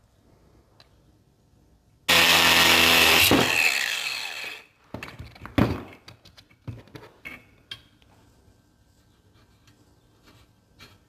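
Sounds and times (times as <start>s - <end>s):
angle grinder running: 2.1s - 4.7s.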